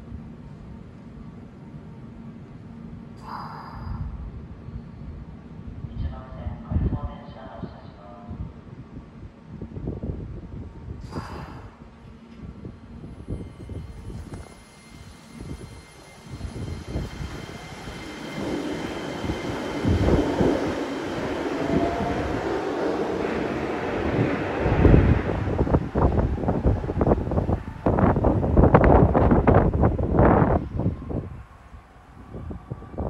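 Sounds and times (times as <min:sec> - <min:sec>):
wind buffeting microphone: 0:05.1 - 0:33.0
train running with rising whine: 0:08.7 - 0:33.0.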